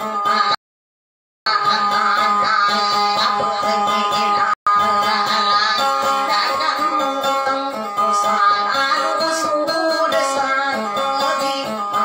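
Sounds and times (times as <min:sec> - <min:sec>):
plucked acoustic guitar: 0:00.0 - 0:00.6, 0:01.5 - 0:12.0
woman singing: 0:01.5 - 0:12.0.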